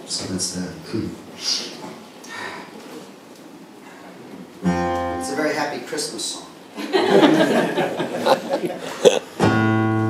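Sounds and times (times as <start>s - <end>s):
acoustic guitar chord ringing: 4.6s - 5.6s, 9.4s - 10.0s
person laughing: 6.9s - 9.4s.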